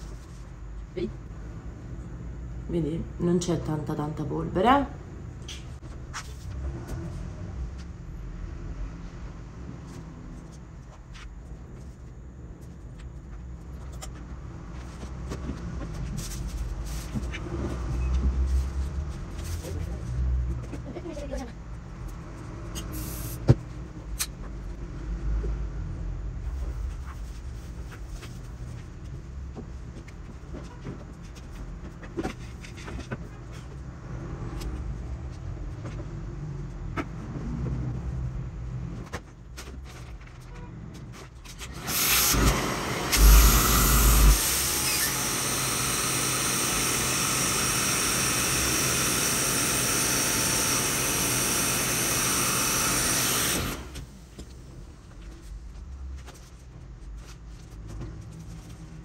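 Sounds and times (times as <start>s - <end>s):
vacuum motor running: 41.8s - 54.2s.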